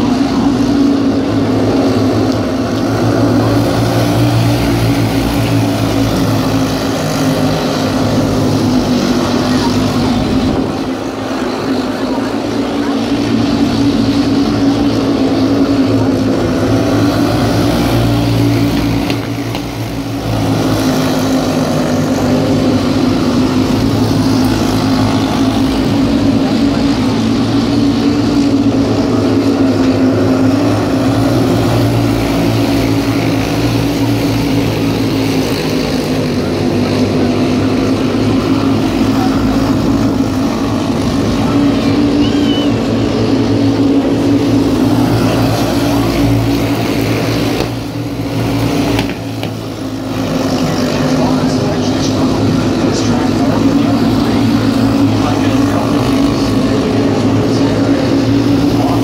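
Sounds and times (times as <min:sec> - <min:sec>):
racing car engines droning: 0:00.0 - 0:59.0.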